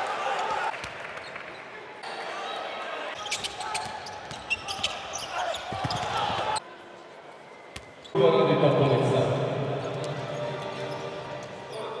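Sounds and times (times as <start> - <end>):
crowd noise: 0.0 - 12.0
basketball court sounds: 3.2 - 6.6.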